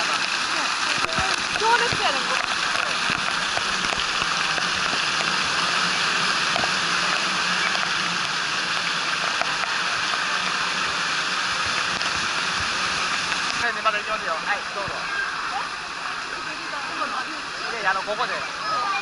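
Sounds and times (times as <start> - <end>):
water pouring and splashing: 0.0 - 19.0.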